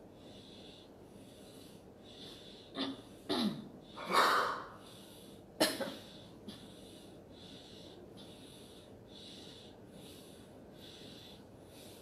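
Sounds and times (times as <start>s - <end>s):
person coughing: 2.8s - 4.7s, 5.6s - 6.1s.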